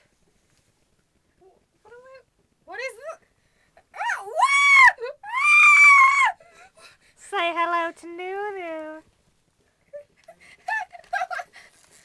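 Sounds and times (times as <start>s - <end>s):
loud screams: 4.0s - 6.4s.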